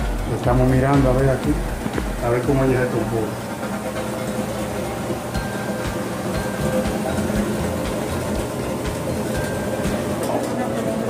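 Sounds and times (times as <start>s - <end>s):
washing machine spinning: 0.0s - 11.0s.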